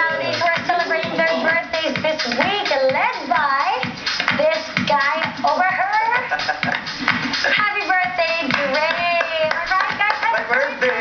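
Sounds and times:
hands clapping: 6.6s - 7.6s, 8.3s - 11.0s.

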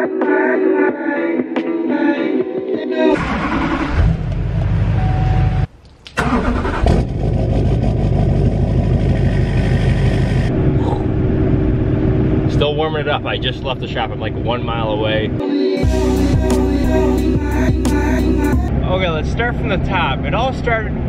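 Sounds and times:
diesel engine starting and running: 3.0s - 21.0s.

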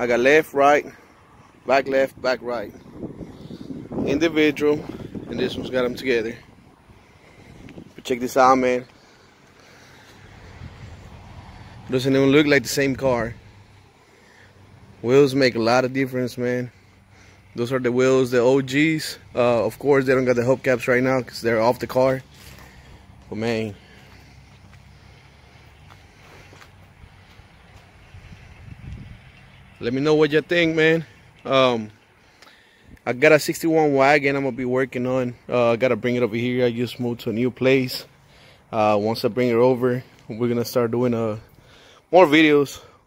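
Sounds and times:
wind rumbling on microphone: 2.1s - 8.1s, 27.9s - 29.5s.

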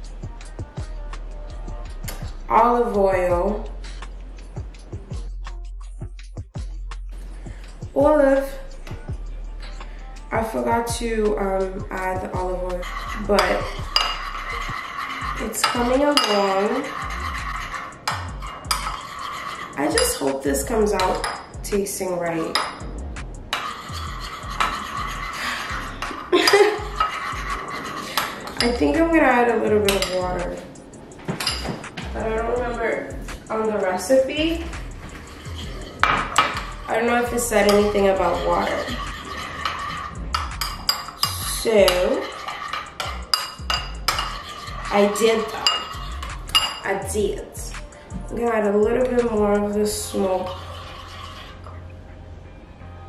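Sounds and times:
metal spoon stirring in bowl: 9.7s - 31.7s, 32.4s - 51.8s
spoon clinking in bowl: 39.4s - 46.9s.

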